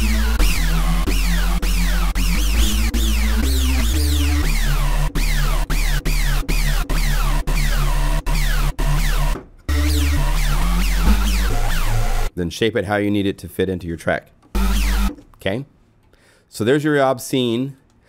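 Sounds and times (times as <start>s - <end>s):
harsh synthesizer bass: 0.0s - 12.3s, 14.6s - 15.2s.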